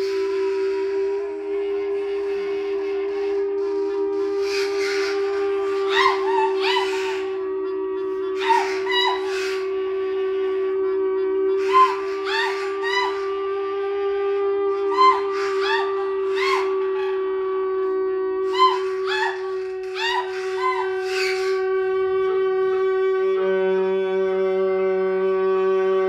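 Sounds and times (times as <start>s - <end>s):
long held note: 0.0s - 26.0s.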